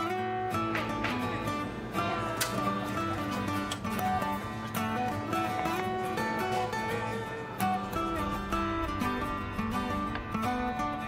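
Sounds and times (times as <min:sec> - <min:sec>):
plucked guitar notes: 0:00.0 - 0:11.0.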